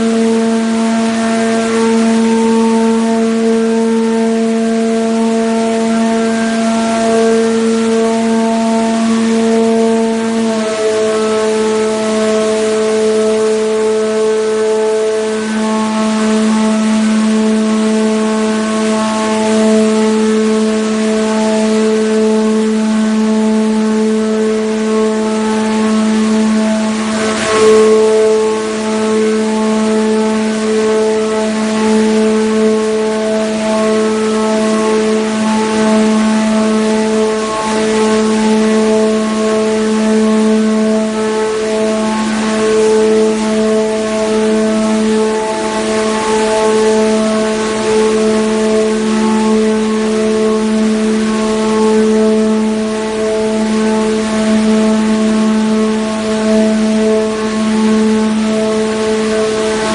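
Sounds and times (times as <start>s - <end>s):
loud steady machine hum: 0.0s - 59.9s.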